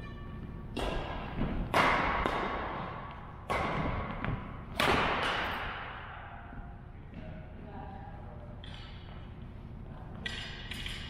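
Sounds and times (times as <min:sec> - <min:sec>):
racket hitting shuttlecock: 0:00.7 - 0:06.4.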